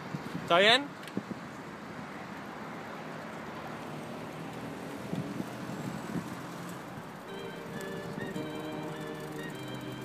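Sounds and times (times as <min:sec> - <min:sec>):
wind buffeting microphone: 0:00.0 - 0:02.2, 0:04.8 - 0:10.0
distant traffic hum: 0:00.0 - 0:10.0.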